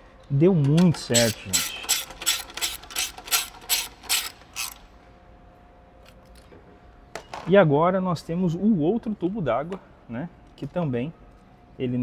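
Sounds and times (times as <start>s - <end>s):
ratchet wrench clicking: 0.7s - 4.8s.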